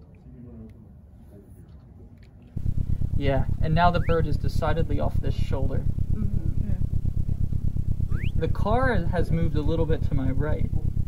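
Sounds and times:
synthesized car engine rumble: 0:02.6 - 0:11.0.

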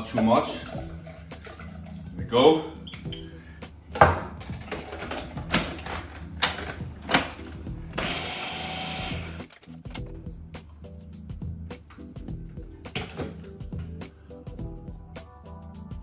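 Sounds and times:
blender running: 0:08.0 - 0:09.4.

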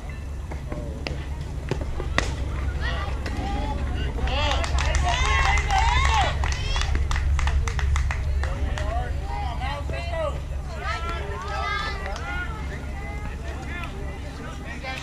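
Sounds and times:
low rumble: 0:00.0 - 0:15.0
voices shouting and cheering: 0:01.1 - 0:15.0
bat cracking ball: 0:01.7 - 0:02.4.

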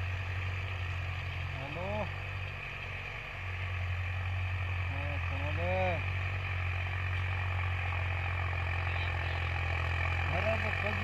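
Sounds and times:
tractor engine running: 0:00.0 - 0:11.0
man talking: 0:10.3 - 0:11.0.

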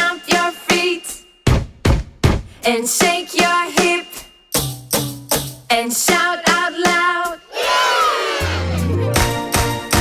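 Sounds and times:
children's song: 0:00.0 - 0:01.3, 0:02.6 - 0:04.4, 0:05.7 - 0:08.8
crowd shouting and cheering: 0:07.5 - 0:09.0.

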